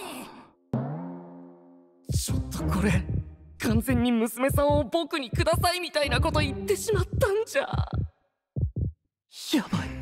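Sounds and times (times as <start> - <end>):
heartbeat thumps: 2.1 - 9.0.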